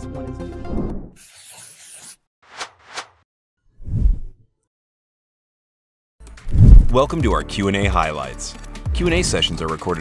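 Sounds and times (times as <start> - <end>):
quick whooshes: 3.8 - 4.4, 6.4 - 7.0.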